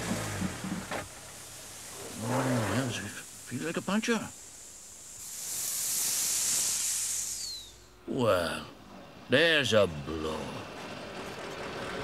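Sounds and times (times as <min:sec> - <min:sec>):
air hissing out of tyre: 0:00.0 - 0:08.0
short falling whistle: 0:07.2 - 0:07.9.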